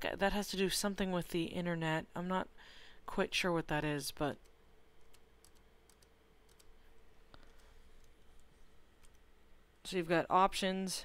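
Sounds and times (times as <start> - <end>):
faint steady hum: 0.0 - 11.0
computer clicks: 5.0 - 6.7.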